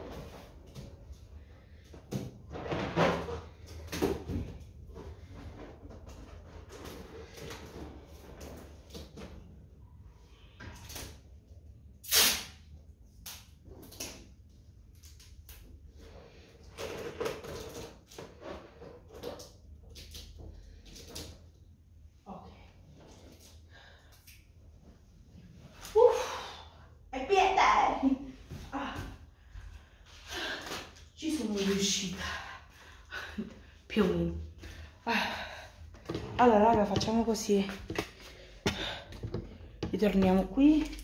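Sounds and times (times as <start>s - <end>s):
rubbing and rustling of balloons: 0.0s - 9.7s
balloon burst: 12.0s - 12.6s.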